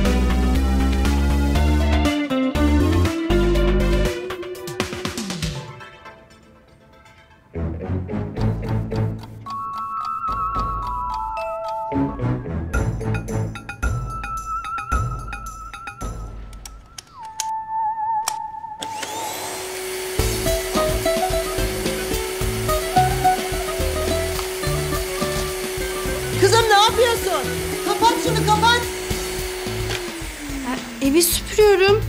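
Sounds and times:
vacuum cleaner running: 18.8s - 32.0s.

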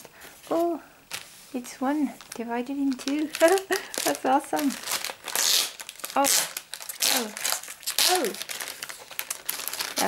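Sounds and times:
plastic shrink wrap crinkling: 0.0s - 10.0s.

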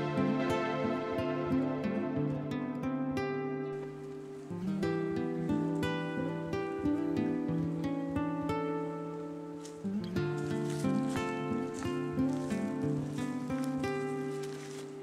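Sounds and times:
acoustic guitar music: 0.0s - 15.0s.

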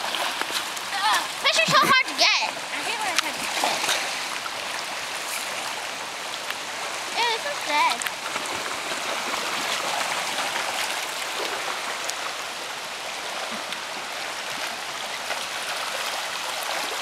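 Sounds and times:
creek rushing over gravel: 0.0s - 17.0s.

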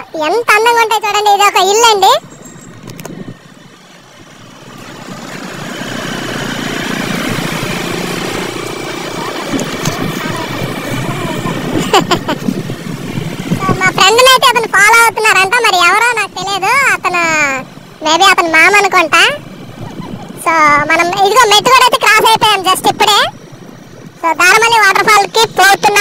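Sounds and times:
motorcycle engine: 0.0s - 26.0s
wind noise: 2.2s - 15.5s, 19.2s - 26.0s.

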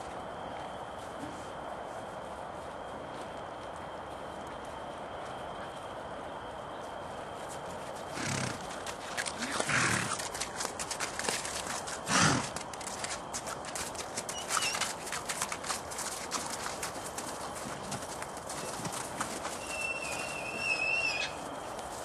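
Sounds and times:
steady background hiss: 0.0s - 22.0s
hoof clicks: 3.0s - 22.0s
pony calls: 19.6s - 21.4s.

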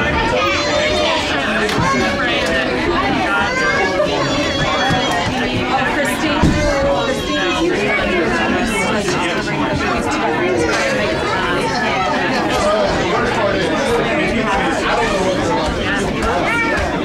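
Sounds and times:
overlapping conversation: 0.0s - 17.0s.

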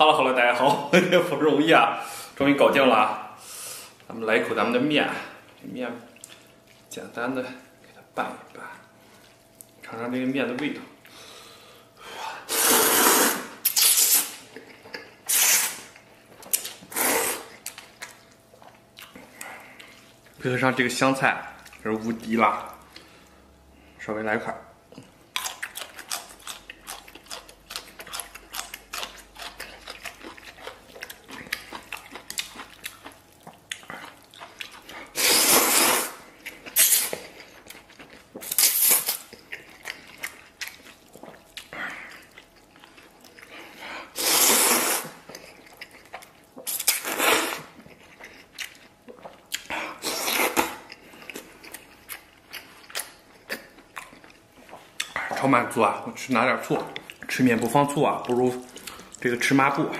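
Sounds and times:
wet chewing: 5.5s - 7.0s, 12.6s - 20.4s, 24.9s - 55.6s, 56.2s - 59.5s
noodle slurps: 12.5s - 14.4s, 15.3s - 15.9s, 16.9s - 17.6s, 35.2s - 36.2s, 44.2s - 45.2s, 46.7s - 47.8s.

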